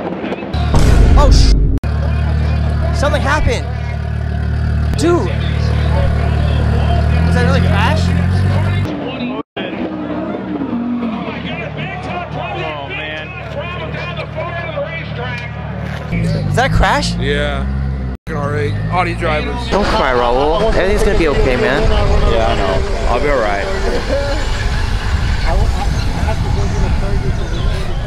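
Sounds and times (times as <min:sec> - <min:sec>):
people's voices: 0:00.1 - 0:28.0
loud racing car engines: 0:01.8 - 0:28.0
excited onlookers' voices: 0:01.9 - 0:17.7, 0:18.4 - 0:28.0.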